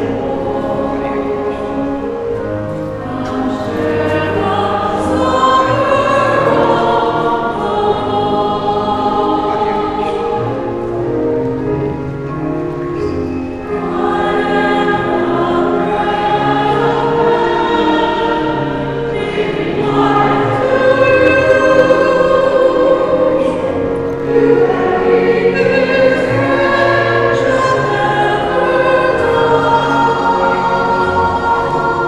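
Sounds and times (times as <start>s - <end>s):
choir singing a slow hymn: 0.0s - 32.0s.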